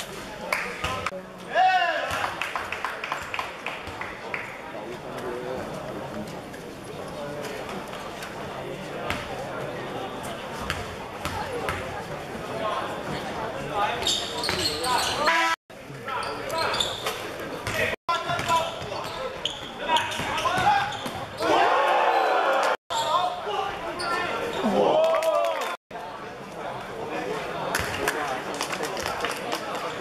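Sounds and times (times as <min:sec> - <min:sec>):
sneakers squeaking: 0:13.9 - 0:15.4, 0:16.1 - 0:21.6, 0:22.9 - 0:24.8.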